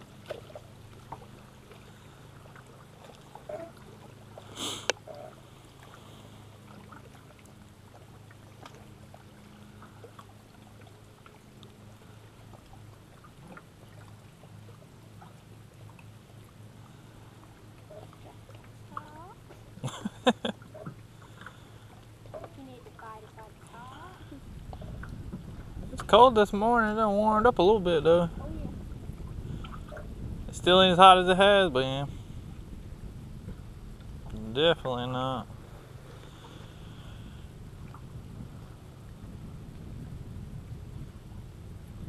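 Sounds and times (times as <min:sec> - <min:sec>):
low steady boat hum: 0:00.0 - 0:42.0.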